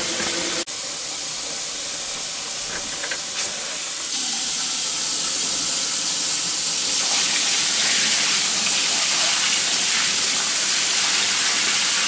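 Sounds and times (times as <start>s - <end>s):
water running into tub: 0.0s - 12.0s.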